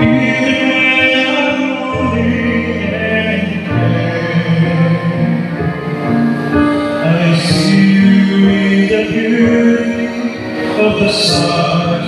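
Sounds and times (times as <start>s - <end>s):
slow song with sung notes: 0.0s - 12.0s.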